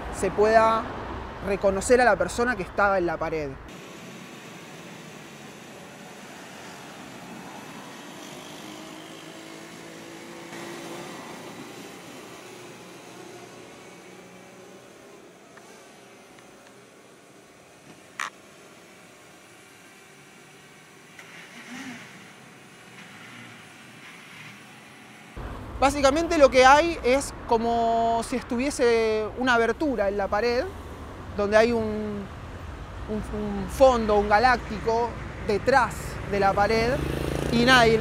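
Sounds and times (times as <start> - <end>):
passing cars: 0.0 - 38.0.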